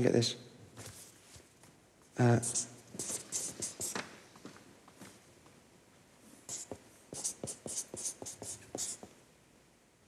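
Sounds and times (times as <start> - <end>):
pen writing on paper: 2.4 - 4.0, 6.5 - 9.1.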